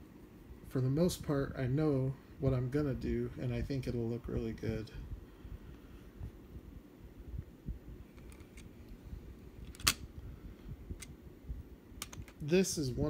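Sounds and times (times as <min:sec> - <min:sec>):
sharp click: 0:12.0 - 0:12.4.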